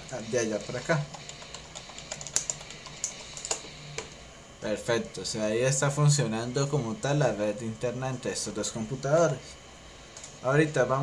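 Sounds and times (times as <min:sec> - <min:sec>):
computer keyboard key clicks: 0:01.2 - 0:03.6.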